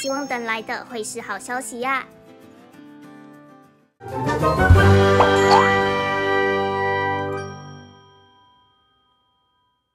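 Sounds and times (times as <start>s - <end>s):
bell-like jingle chimes: 0.0s - 0.7s, 5.2s - 5.9s.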